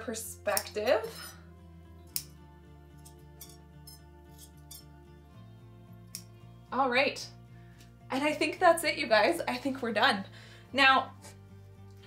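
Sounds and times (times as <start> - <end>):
quiet background music: 0.0 - 12.0
scissors snipping yarn: 0.5 - 1.2, 2.1 - 2.4, 6.1 - 6.4.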